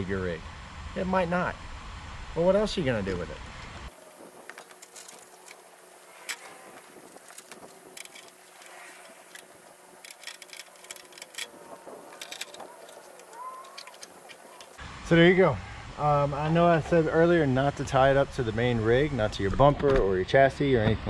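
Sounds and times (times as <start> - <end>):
strap webbing clicks and rustling: 3.9 - 14.8.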